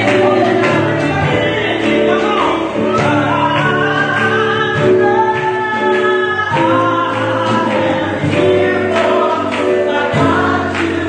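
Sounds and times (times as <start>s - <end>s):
electric guitar: 0.0s - 11.0s
keyboard: 0.0s - 11.0s
woman singing into microphone: 0.0s - 11.0s.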